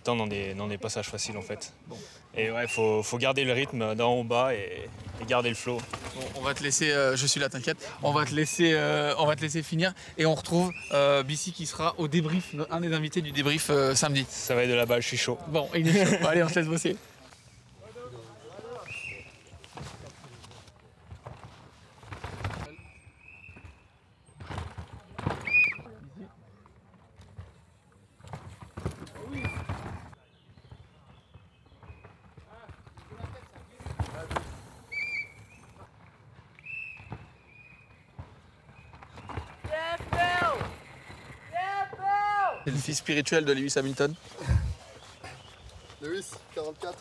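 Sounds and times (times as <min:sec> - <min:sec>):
mountain bikes rattling downhill: 0:02.4 - 0:47.0.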